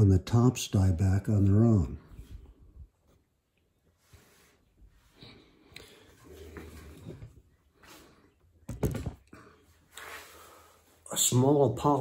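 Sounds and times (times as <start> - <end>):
rustling and handling noise: 2.2 - 11.0.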